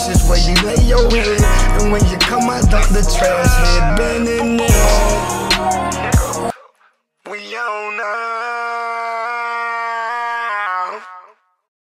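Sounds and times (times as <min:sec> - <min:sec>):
long held note shifting pitch: 0:01.4 - 0:06.5.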